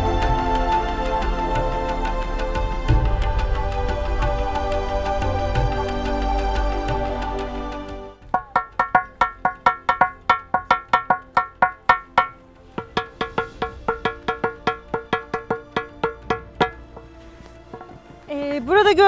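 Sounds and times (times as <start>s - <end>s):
stone striking ringing rock slab: 8.2s - 18.2s.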